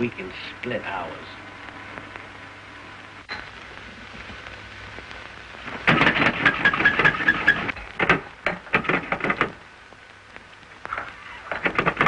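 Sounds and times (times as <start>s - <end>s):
film track hiss and hum: 0.0s - 12.0s.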